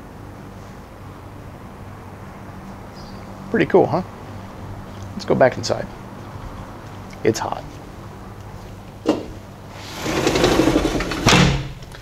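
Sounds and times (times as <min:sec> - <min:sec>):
sliding door rolling on track: 0:09.1 - 0:11.7
door closing with a bang: 0:11.0 - 0:11.8.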